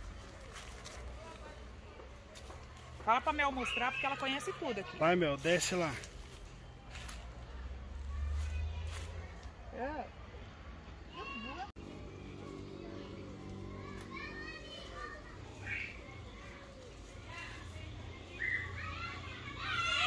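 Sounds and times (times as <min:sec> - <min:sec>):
distant children shouting: 0:06.9 - 0:20.0.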